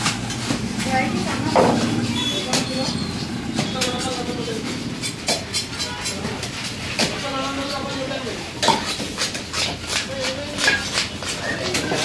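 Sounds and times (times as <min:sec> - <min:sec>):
knife scraping fish scales: 0:04.0 - 0:07.0, 0:08.6 - 0:12.0.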